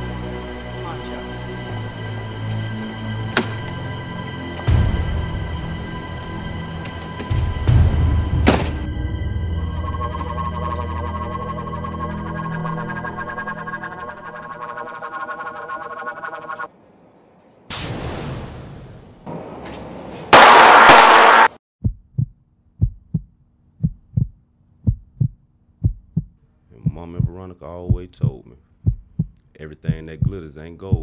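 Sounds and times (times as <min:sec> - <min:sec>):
background music: 0:00.0 - 0:16.7
gunshots: 0:20.3 - 0:21.6
heartbeat thumps: 0:21.8 - 0:31.0.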